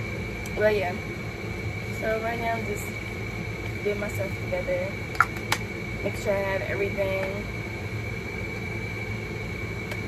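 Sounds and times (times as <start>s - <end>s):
air conditioner hum and whine: 0.0s - 10.0s.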